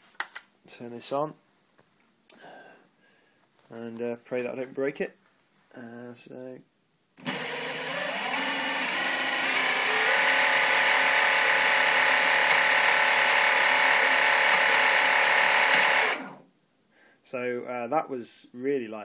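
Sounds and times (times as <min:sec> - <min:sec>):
electric motor whine: 0:07.2 - 0:16.4.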